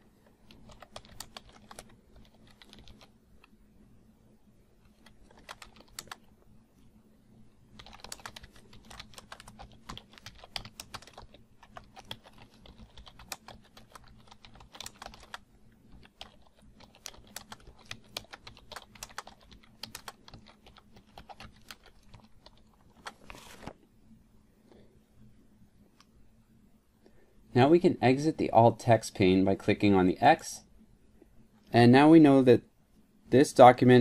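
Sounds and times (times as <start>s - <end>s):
computer keyboard typing: 0.5s - 3.5s, 4.9s - 6.3s, 7.8s - 23.5s.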